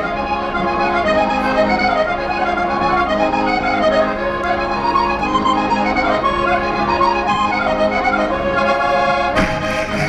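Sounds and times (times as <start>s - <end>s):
accordion-led folk band playing: 0.0s - 10.0s.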